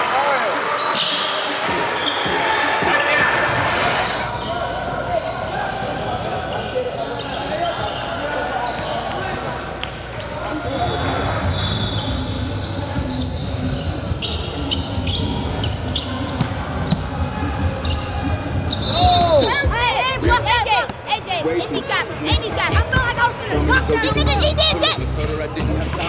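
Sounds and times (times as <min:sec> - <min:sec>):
sneakers squeaking: 0:00.0 - 0:21.0
voices echoing in hall: 0:00.0 - 0:26.0.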